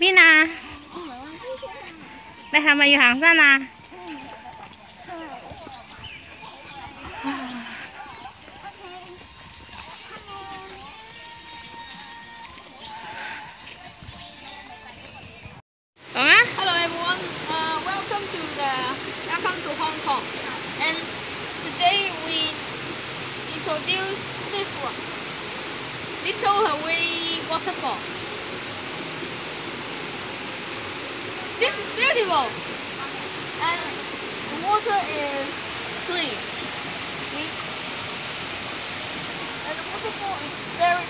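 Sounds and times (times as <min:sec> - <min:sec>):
faint voices talking: 0:03.5 - 0:16.4
footsteps on concrete: 0:03.7 - 0:15.5
water rushing over rocks: 0:16.0 - 0:41.0.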